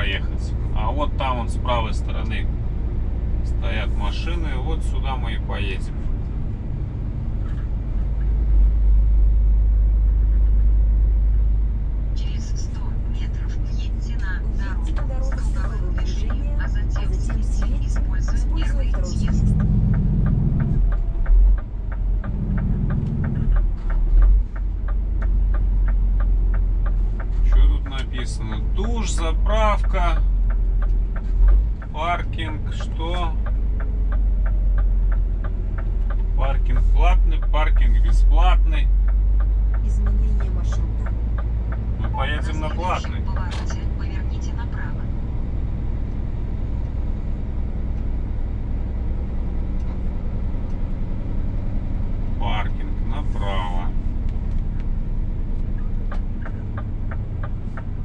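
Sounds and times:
truck engine droning: 0.0s - 58.0s.

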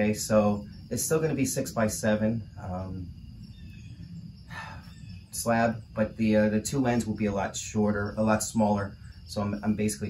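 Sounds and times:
low steady outdoor rumble: 0.0s - 10.0s.

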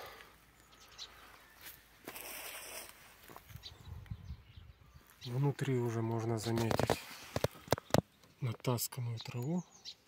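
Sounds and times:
sparrow chirps: 0.5s - 10.0s.

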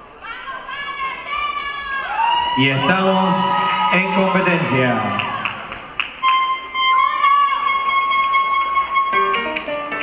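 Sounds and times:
salsa music over sound system: 6.2s - 10.0s.

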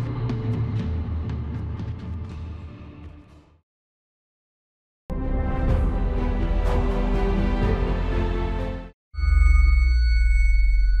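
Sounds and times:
high ringing tones: 9.2s - 11.0s.

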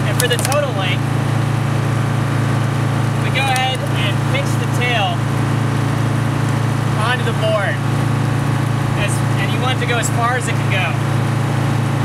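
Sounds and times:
boat engine droning: 0.0s - 12.0s.

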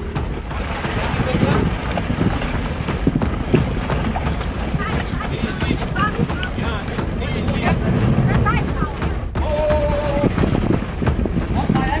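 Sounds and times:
low rumble: 0.0s - 12.0s
wind buffeting microphone: 0.0s - 12.0s.

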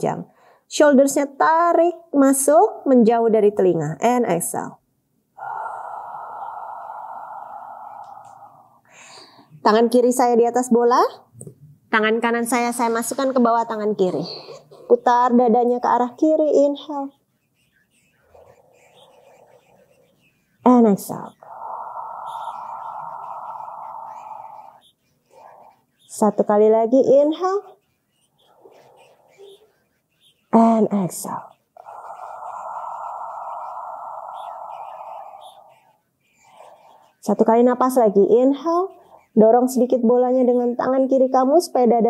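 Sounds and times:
woman exhaling slowly: 5.4s - 9.4s.

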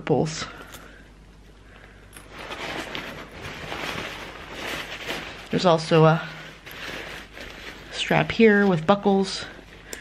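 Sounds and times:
nylon fabric rustling: 2.2s - 10.0s.

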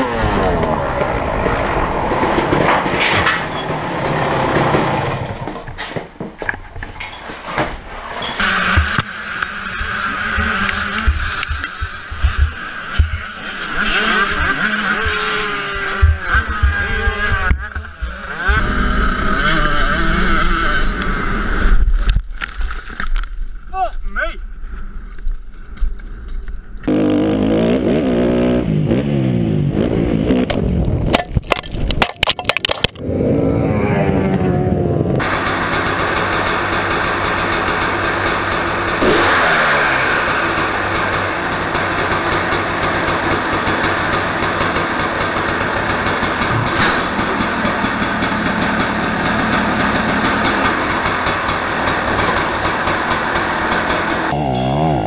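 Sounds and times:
dirt bike engine revving: 0.0s - 5.4s, 8.0s - 21.8s, 26.8s - 31.1s, 32.8s - 55.0s.

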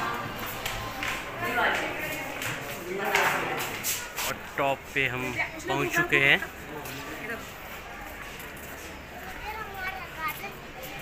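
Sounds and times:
children talking and calling: 0.0s - 11.0s
people talking nearby: 0.0s - 11.0s.

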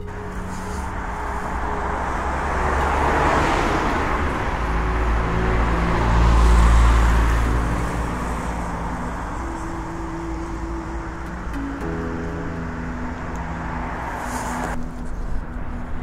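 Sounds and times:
outdoor rumbling and hissing: 0.0s - 16.0s.

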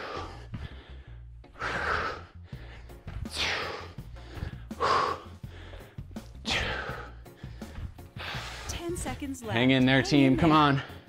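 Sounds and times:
man breathing heavily: 0.0s - 9.0s, 10.8s - 11.0s
background music: 0.0s - 11.0s.

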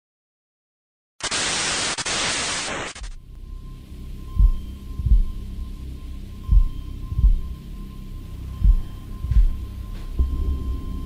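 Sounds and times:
static hiss: 1.2s - 3.2s.

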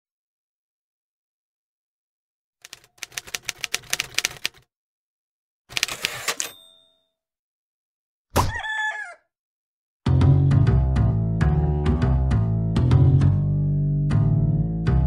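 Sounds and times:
bell ring: 6.4s - 7.1s
rooster crow: 8.5s - 9.2s.

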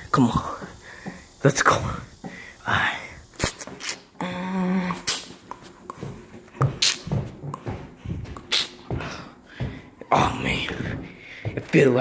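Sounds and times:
footsteps on carpeted stairs: 0.0s - 2.6s, 5.0s - 12.0s.

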